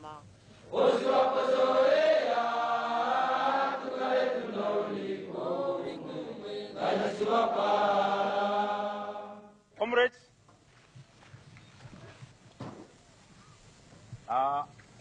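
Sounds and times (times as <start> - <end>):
group chanting in unison: 0.6 - 9.6.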